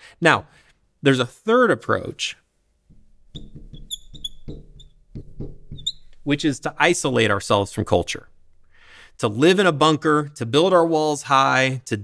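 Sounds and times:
marker squeaking on glass: 2.9 - 7.2.

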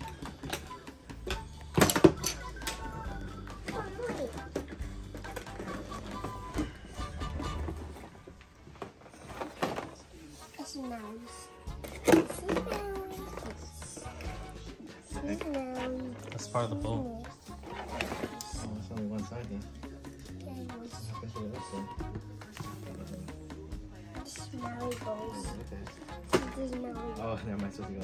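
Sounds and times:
plastic toys and packaging handled: 0.0 - 16.9, 17.6 - 19.4
background music: 0.0 - 28.0
children's voices: 12.2 - 14.3.

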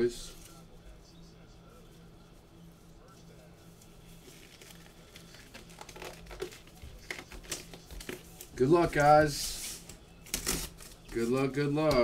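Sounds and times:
low electrical hum: 0.0 - 12.0
crinkling and clicking handling noises: 3.6 - 12.0.

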